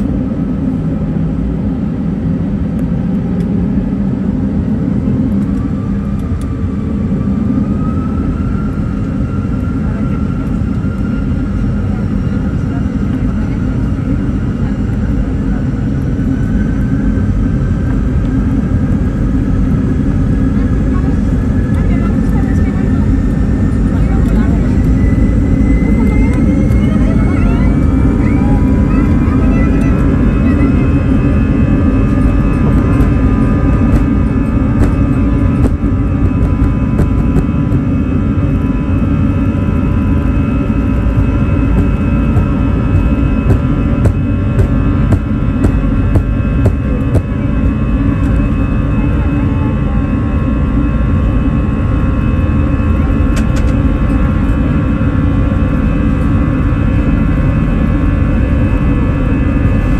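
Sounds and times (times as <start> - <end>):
jet engines spooling up: 18.8 - 49.2.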